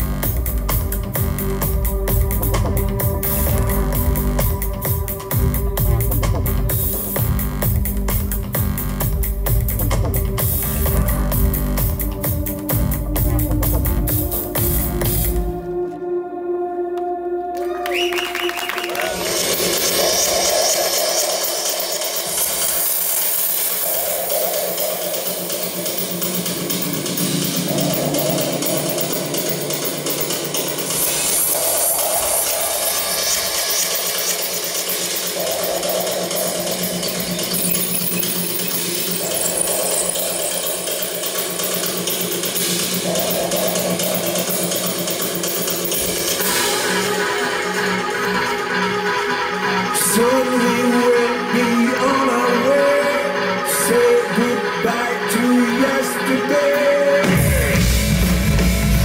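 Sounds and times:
synthesizer tone sweeping up: 0:18.9 - 0:48.8
hissy electronic texture: 0:19.4 - 0:47.2.

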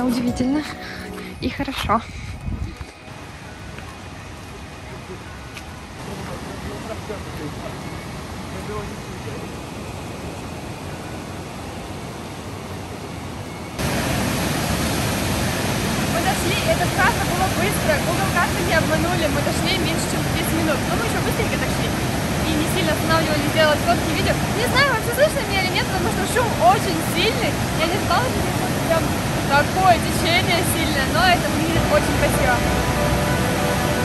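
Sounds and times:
waterfall rushing: 0:03.0 - 0:12.6, 0:13.8 - 0:34.0.

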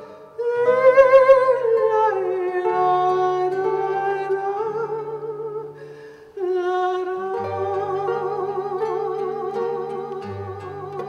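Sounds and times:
woman singing with vibrato: 0:00.0 - 0:05.8, 0:06.4 - 0:11.0
classical guitar: 0:00.0 - 0:11.0.

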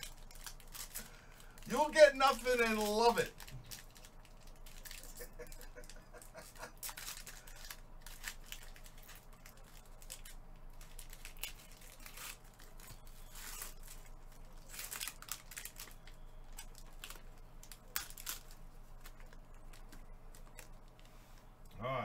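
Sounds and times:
foil wrapper tearing and crinkling: 0:00.0 - 0:21.1.

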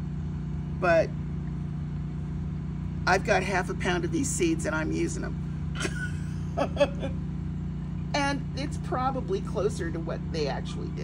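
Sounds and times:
low mechanical drone: 0:00.0 - 0:11.0.

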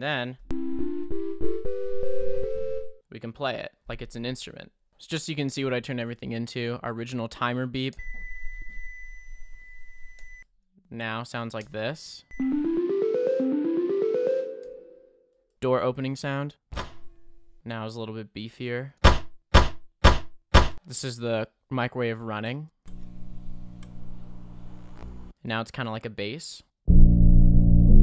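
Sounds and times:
pitched beep chords: 0:12.3 - 0:15.1.

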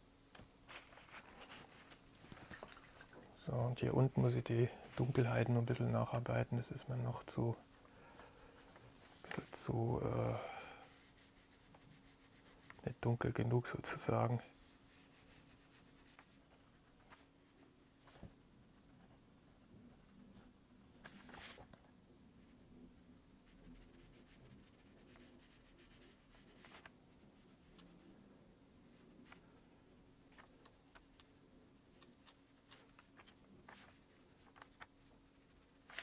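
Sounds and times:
brush scratching on board: 0:05.0 - 0:21.7, 0:23.3 - 0:28.1, 0:28.8 - 0:36.0
paintbrush dabbing paint: 0:05.0 - 0:21.7, 0:22.4 - 0:28.2, 0:28.8 - 0:36.0.

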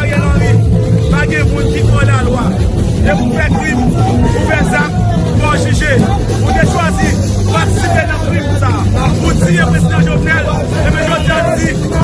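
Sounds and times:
crowd chatter: 0:00.0 - 0:12.0
man speaking loudly: 0:00.0 - 0:12.0.

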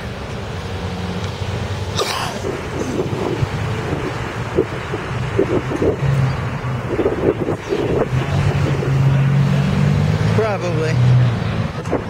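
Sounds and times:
vehicle engine humming: 0:00.0 - 0:12.0
wind on microphone: 0:02.1 - 0:12.0.

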